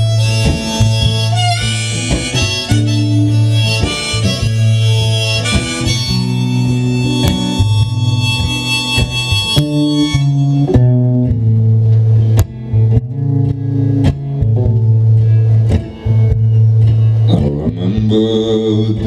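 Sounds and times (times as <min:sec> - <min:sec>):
sustained high melody: 0:00.0 - 0:11.3
acoustic guitar playing: 0:00.0 - 0:19.0.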